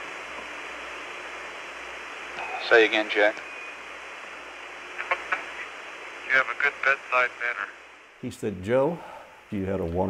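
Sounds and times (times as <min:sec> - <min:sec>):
radio static hiss: 0:00.0 - 0:09.9
faint radio voice: 0:05.0 - 0:07.8.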